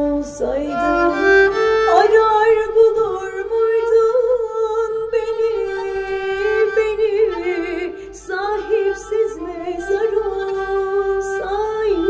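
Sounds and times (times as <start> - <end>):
woman singing a long note: 1.9 - 12.0.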